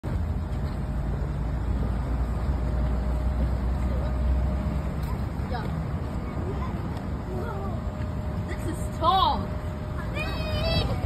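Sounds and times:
children calling: 5.0s - 11.0s.

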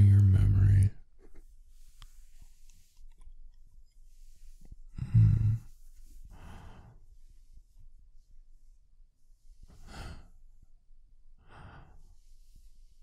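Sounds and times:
man breathing close to microphone: 4.2s - 7.7s, 9.6s - 10.6s, 11.4s - 13.0s.

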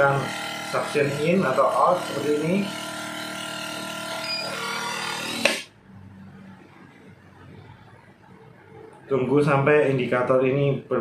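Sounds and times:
vacuum sealer pump running: 0.0s - 5.7s.

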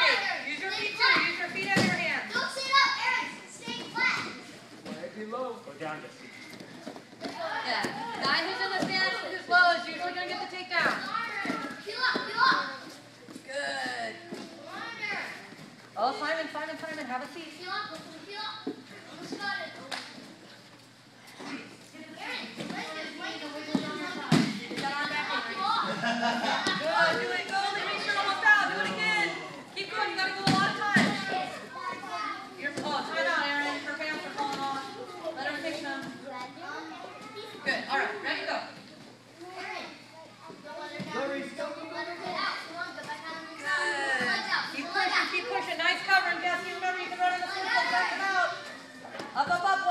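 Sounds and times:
children chattering: 21.4s - 38.1s, 39.1s - 49.9s.

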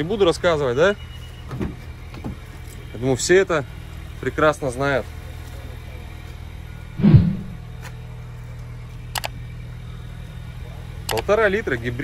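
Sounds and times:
steady low hum: 6.9s - 8.3s
dull thump: 7.0s - 7.6s.

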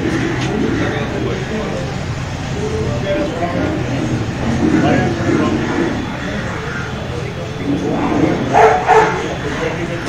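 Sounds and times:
murmur of men's voices: 0.0s - 10.0s
dog barking: 8.5s - 9.3s.

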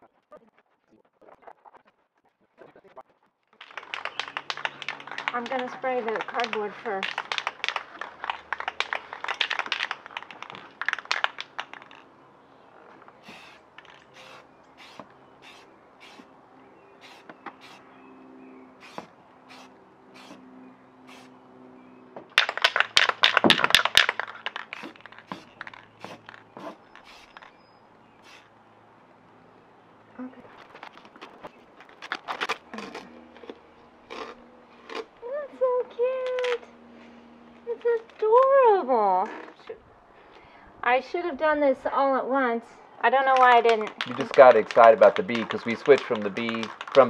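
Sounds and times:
cardboard crinkling and scraping: 30.4s - 33.6s.

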